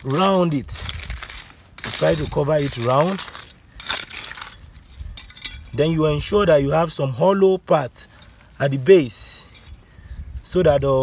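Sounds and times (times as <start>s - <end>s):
hands scraping gritty soil: 0.0s - 9.8s.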